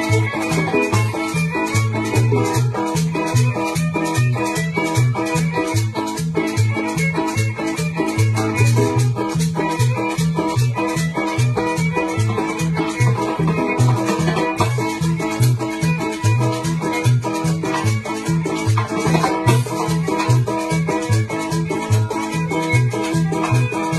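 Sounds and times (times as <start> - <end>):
bass line: 0.0 - 23.9
guitar: 0.0 - 23.9
shaker: 0.0 - 23.9.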